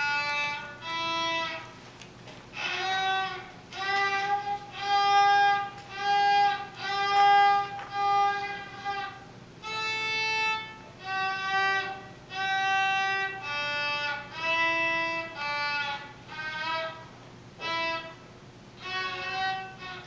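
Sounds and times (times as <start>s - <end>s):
child playing violin: 0.0s - 1.8s, 2.5s - 20.0s.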